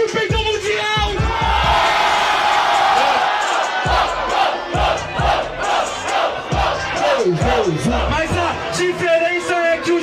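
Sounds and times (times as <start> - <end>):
crowd shouting and chanting: 0.0 - 10.0
hip-hop beat: 0.0 - 10.0.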